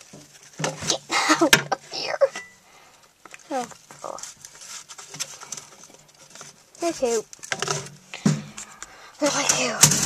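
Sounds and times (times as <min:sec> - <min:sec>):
soft rustling: 0:00.0 - 0:09.9
child vocal sound: 0:00.8 - 0:02.4, 0:09.2 - 0:09.9.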